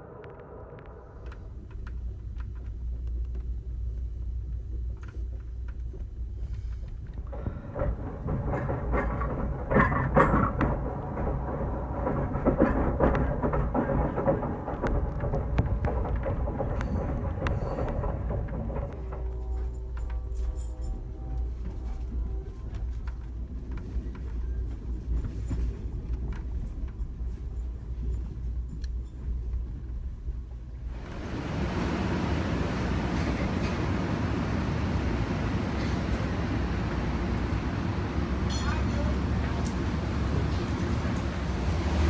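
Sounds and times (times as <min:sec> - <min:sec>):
train rumbling: 0:00.0 - 0:42.0
train rushing noise: 0:06.4 - 0:42.0.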